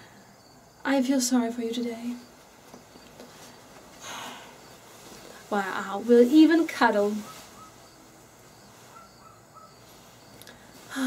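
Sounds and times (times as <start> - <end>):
soft bird chirps: 7.1 - 10.9.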